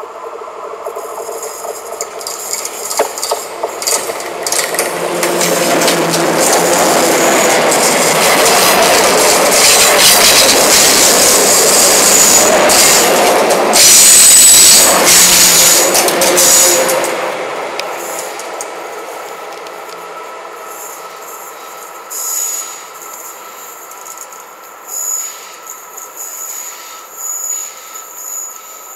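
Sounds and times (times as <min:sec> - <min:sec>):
diesel locomotive rumble: 0:00.0 - 0:24.9
steady high whine: 0:00.0 - 0:28.9
train wheels rolling on rails: 0:00.0 - 0:28.9.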